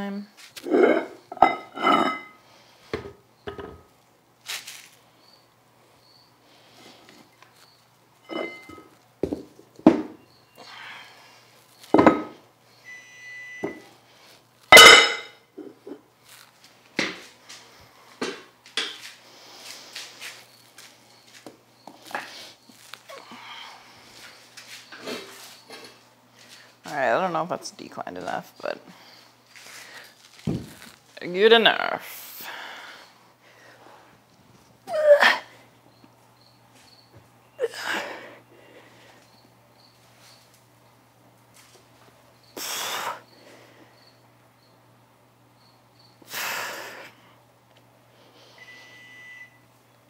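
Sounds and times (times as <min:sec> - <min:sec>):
weight plates clanking: 0:08.3 - 0:08.9.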